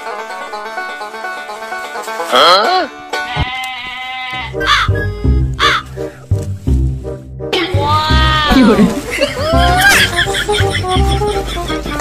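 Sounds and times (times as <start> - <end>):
comedy background music: 0.0 - 3.7, 4.3 - 12.0
pulsing bass beat: 4.6 - 9.9.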